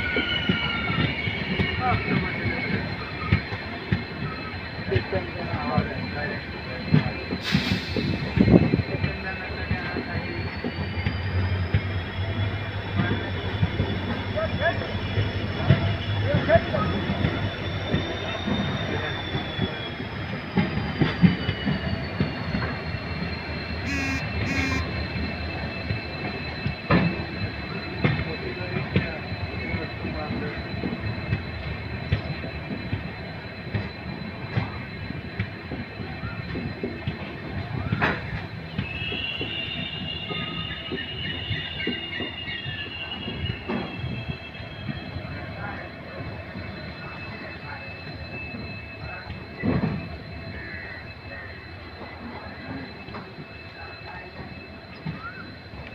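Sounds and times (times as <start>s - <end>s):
train wheels rumbling on rail: 0.0s - 55.9s
high thin wheel squeal: 6.3s - 32.6s, 37.8s - 51.6s.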